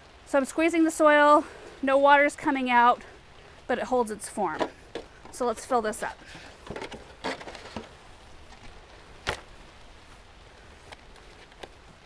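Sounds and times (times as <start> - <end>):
soil rustling and crunching: 0.0 - 12.0.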